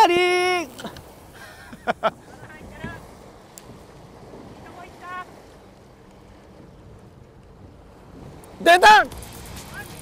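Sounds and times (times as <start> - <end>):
wind and sea noise: 0.0 - 10.0
wind buffeting microphone: 0.0 - 10.0.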